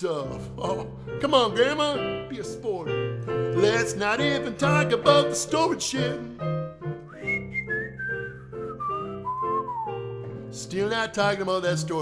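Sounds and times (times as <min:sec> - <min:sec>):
keyboard blues chord vamp: 0:00.5 - 0:07.4
man whistling: 0:07.0 - 0:10.2.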